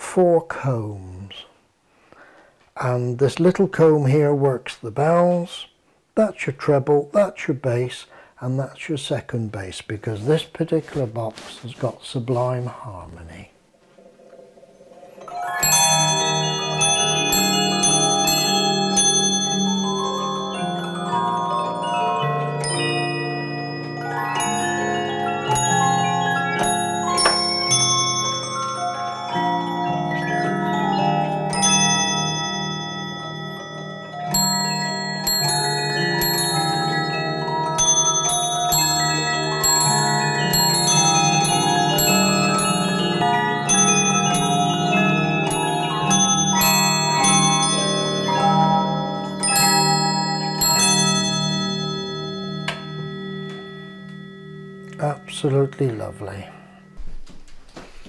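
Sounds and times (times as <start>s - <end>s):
music box playing a tune: 15.0s - 57.0s
small bells ringing: 15.0s - 57.0s.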